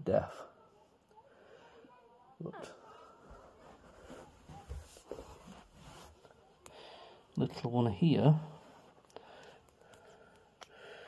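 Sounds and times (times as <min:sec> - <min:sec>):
rustling of bedding: 0:03.0 - 0:06.5.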